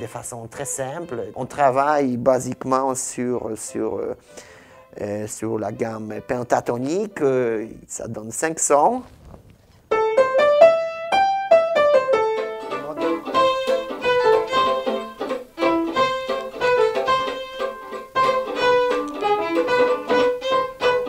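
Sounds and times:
violins and piano playing: 0:00.0 - 0:07.7, 0:09.9 - 0:21.0.

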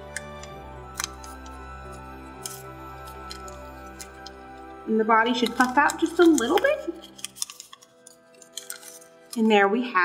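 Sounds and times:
soft sustained background music: 0:00.0 - 0:10.0
paper crinkles and clicks: 0:00.1 - 0:04.6, 0:05.3 - 0:09.5
paper rustle: 0:05.4 - 0:09.5.

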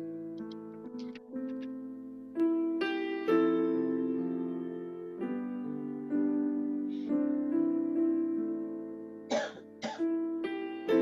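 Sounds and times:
soft piano music: 0:00.0 - 0:11.0
person coughing: 0:09.3 - 0:10.0.

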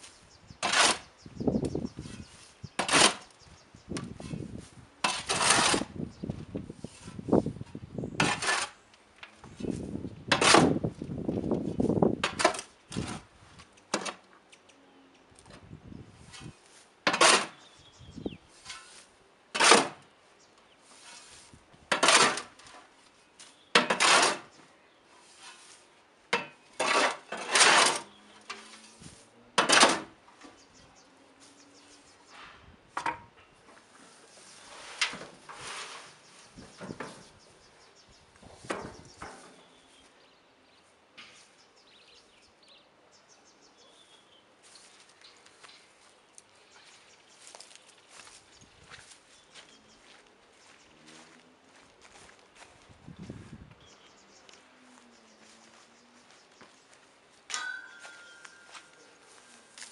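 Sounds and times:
metal shovel scraping soil: 0:00.0 - 0:03.4, 0:04.1 - 0:06.0, 0:06.7 - 0:08.9, 0:09.5 - 0:10.9, 0:11.7 - 0:13.3, 0:16.2 - 0:17.8, 0:18.4 - 0:20.1, 0:20.7 - 0:30.5, 0:33.8 - 0:37.4, 0:57.4 - 0:59.9.

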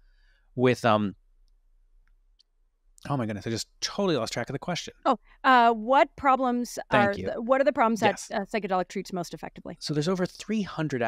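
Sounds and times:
man saying um: 0:00.6 - 0:01.1, 0:03.1 - 0:04.9, 0:07.0 - 0:07.3.

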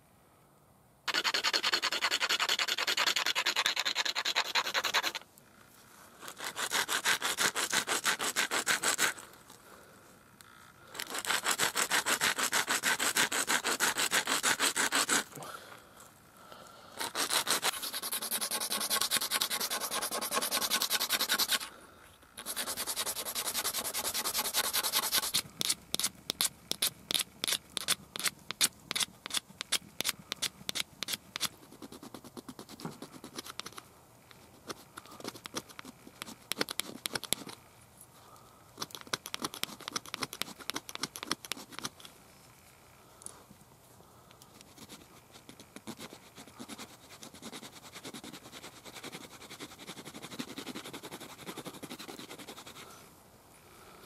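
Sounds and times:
antler grinding on stone: 0:01.1 - 0:05.2, 0:06.2 - 0:09.2, 0:11.0 - 0:15.3, 0:17.0 - 0:21.7.

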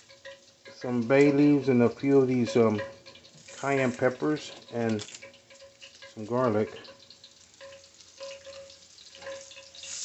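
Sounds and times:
oil sizzling and crackling in pot: 0:00.0 - 0:10.0.

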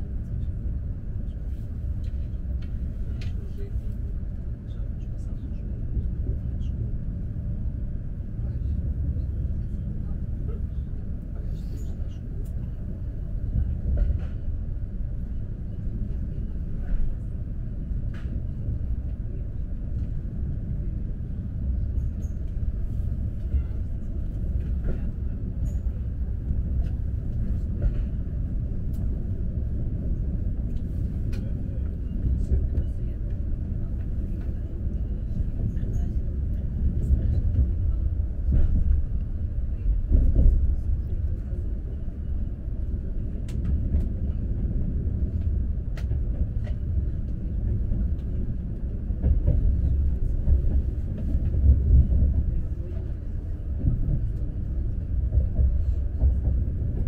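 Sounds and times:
train cabin rumble: 0:00.0 - 0:57.0.

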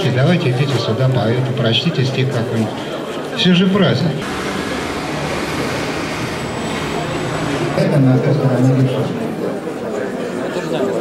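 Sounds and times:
faint low hum: 0:04.2 - 0:09.3
steady rushing noise: 0:04.2 - 0:09.4.

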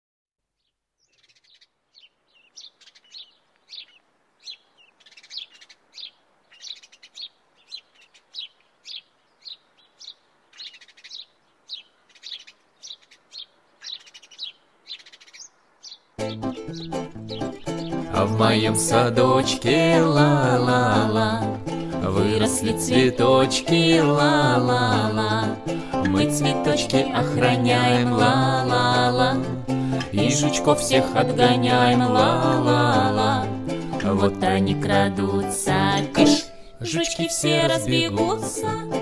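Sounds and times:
birds chirping: 0:00.6 - 0:21.9
acoustic song with plucked strings: 0:16.2 - 0:39.0.

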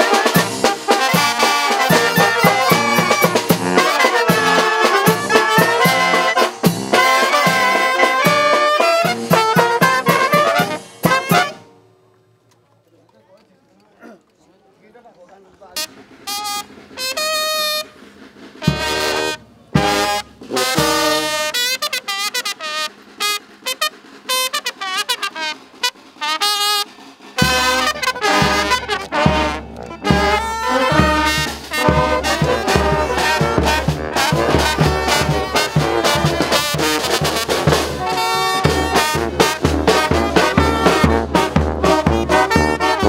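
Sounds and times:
bass drum and cymbals beat: 0:00.0 - 0:11.6, 0:15.6 - 0:43.0
brass band playing: 0:00.0 - 0:12.0, 0:15.7 - 0:43.0.

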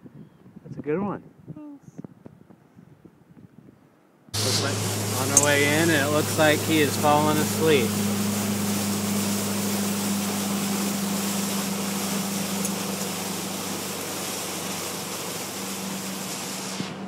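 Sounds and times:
motorboat engine droning: 0:04.4 - 0:17.0
rush of wind and water: 0:04.4 - 0:17.0.

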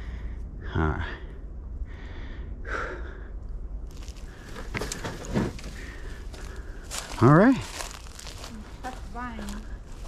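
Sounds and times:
footsteps crunching dry leaves: 0:03.9 - 0:10.0.

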